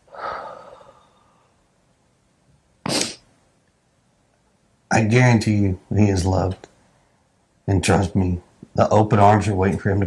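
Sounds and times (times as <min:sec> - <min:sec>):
person exhaling: 0:00.1 - 0:01.6
short sharp sniff: 0:02.9 - 0:03.2.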